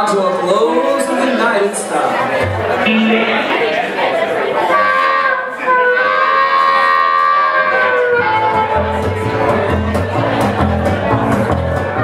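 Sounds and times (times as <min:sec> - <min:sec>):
held note from live band: 0:02.8 - 0:10.2.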